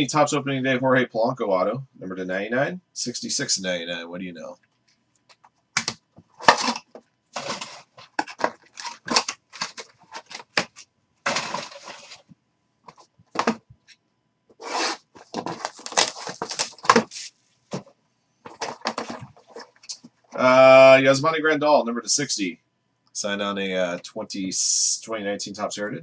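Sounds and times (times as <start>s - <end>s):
plastic cases clicking and tapping: 5.3s - 12.0s, 18.5s - 20.1s
cardboard rustling: 5.8s - 12.3s, 12.9s - 13.6s, 14.6s - 20.1s.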